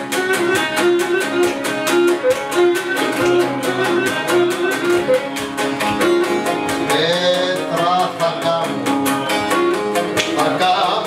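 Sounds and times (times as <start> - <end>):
bowed lyra melody: 0.0 - 7.5
strummed mandolin and lute: 0.0 - 11.0.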